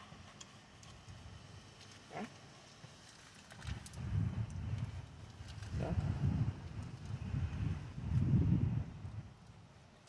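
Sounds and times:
wind gusting on microphone: 3.6 - 9.9.

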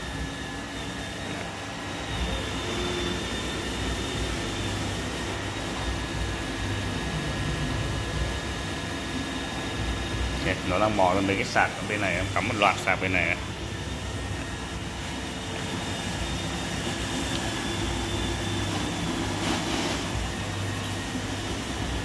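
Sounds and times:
robot vacuum whirring: 0.0 - 22.0
thin high whine: 0.0 - 22.0.

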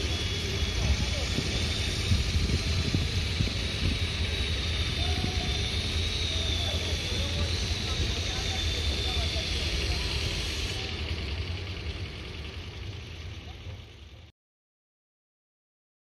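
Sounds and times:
distant voices: 0.0 - 14.3
high wavering whine: 0.0 - 14.3.

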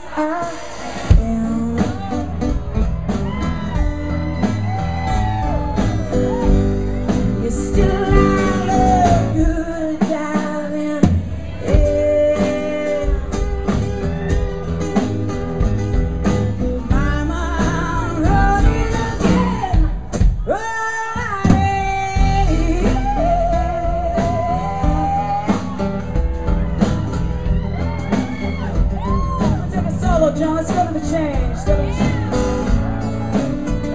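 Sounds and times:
woman singing: 0.0 - 2.3, 7.1 - 13.8, 16.8 - 25.6, 29.7 - 32.4
live blues-rock band: 0.0 - 33.9.

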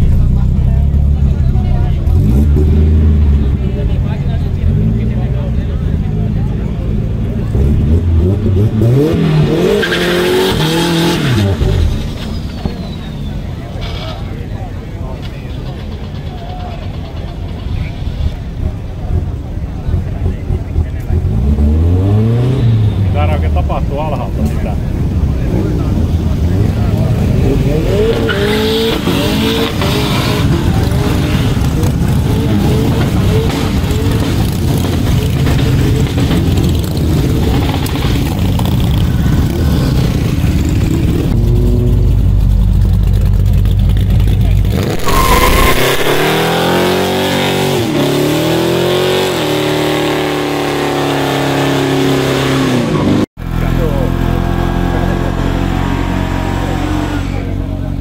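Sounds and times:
car engines revving hard: 0.0 - 58.0
crowd voices: 0.0 - 58.0
tyre squeal: 9.7 - 14.6, 44.8 - 46.9.

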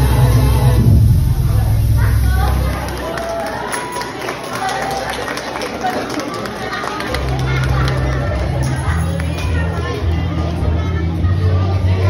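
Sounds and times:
chatter of young voices: 1.3 - 12.0.

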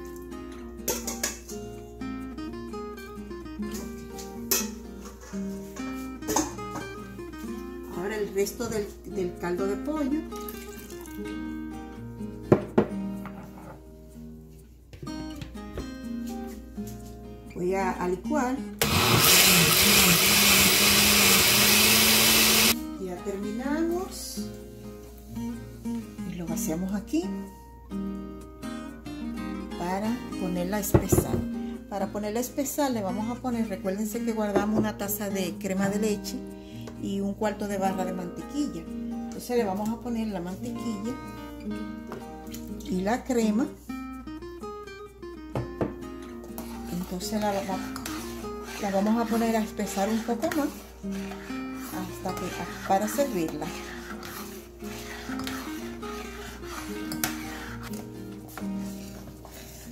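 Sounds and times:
acoustic guitar music: 0.0 - 18.8, 22.7 - 37.5, 38.2 - 39.7, 40.3 - 59.9
blender running: 18.8 - 22.8.

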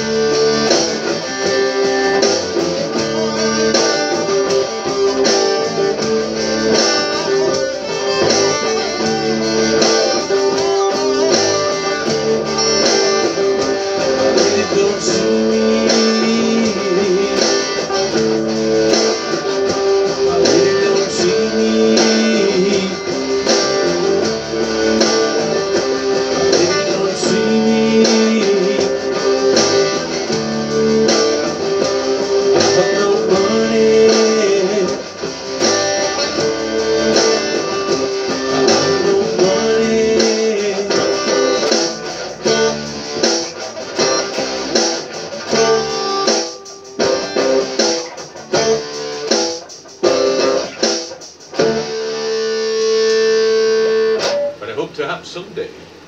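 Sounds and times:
electric guitar strumming chords: 0.0 - 56.0.

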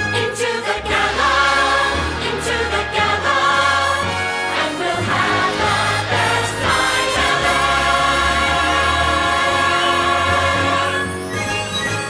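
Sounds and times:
ensemble of voices singing: 0.0 - 11.4
orchestral backing: 0.0 - 12.0.

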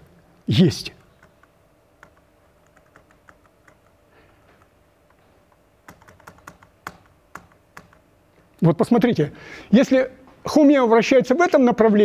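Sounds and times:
laptop keys clicking: 1.0 - 8.1.

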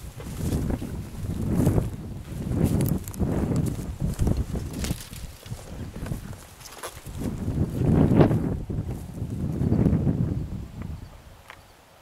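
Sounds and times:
twigs crackling and swishing: 0.0 - 9.2
footsteps in dry grass: 0.0 - 11.6.

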